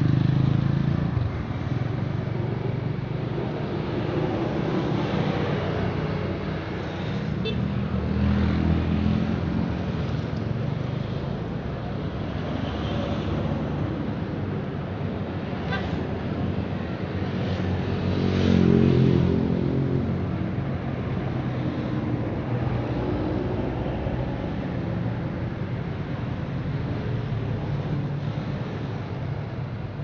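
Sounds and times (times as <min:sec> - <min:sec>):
road traffic passing: 0:00.0 - 0:30.0.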